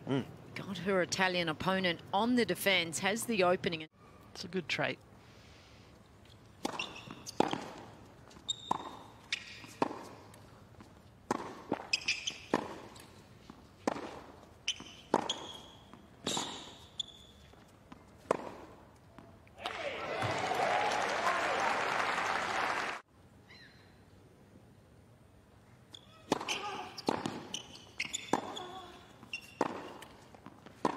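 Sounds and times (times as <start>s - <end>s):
tennis ball bounces: 6.6s - 16.9s, 17.9s - 19.3s, 26.2s - 30.9s
crowd applause: 19.6s - 23.0s.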